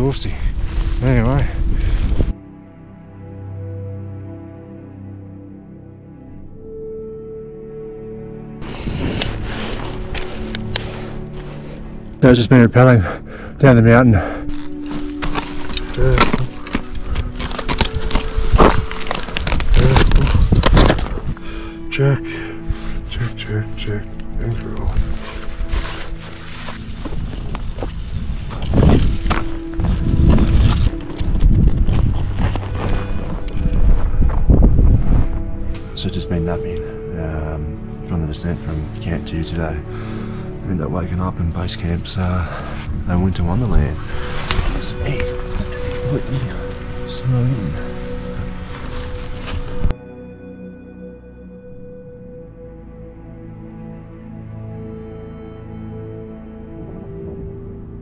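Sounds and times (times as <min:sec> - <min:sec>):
ambient background music: 0:00.0 - 0:58.0
wind gusts buffeting microphone: 0:27.0 - 0:35.8.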